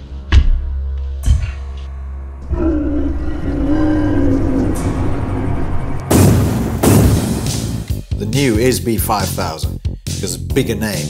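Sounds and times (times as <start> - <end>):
deep rumble: 0.0 - 7.9
dinosaur roar: 2.4 - 6.1.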